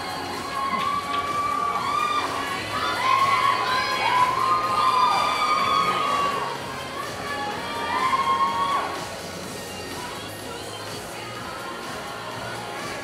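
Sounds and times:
audience cheering and screaming: 0.0 - 9.3.

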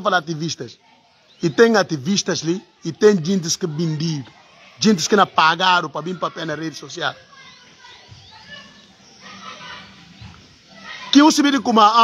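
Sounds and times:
distant voices calling: 0.0 - 12.0.

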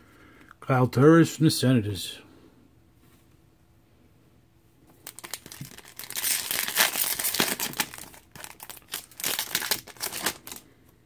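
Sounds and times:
foil pack crinkling: 5.0 - 10.7.

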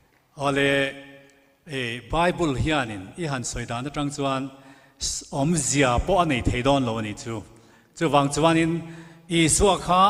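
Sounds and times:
man speaking drawn-out words: 0.4 - 10.0.

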